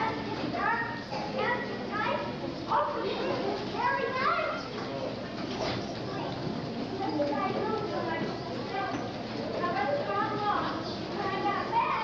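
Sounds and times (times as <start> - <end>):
children speaking distant: 0.0 - 12.0.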